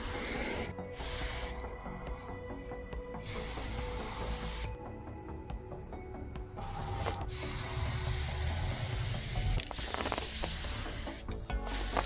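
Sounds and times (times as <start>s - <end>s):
spray paint can hissing: 0.0s - 1.6s, 3.2s - 4.9s, 6.6s - 12.0s.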